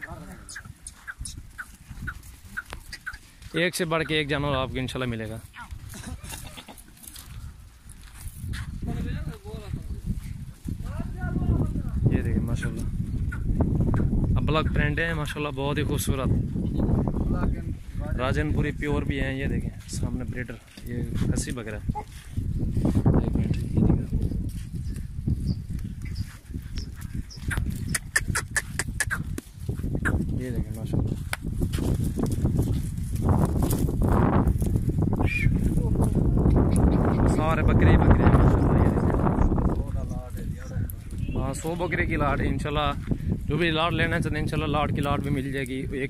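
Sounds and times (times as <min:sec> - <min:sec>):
chickens clucking: 0:00.0 - 0:04.4, 0:12.5 - 0:14.8, 0:26.0 - 0:30.3, 0:36.4 - 0:37.7
goats calling: 0:00.0 - 0:04.7, 0:05.4 - 0:07.4, 0:12.4 - 0:15.0, 0:24.8 - 0:30.4
herd of goats moving: 0:00.0 - 0:46.0.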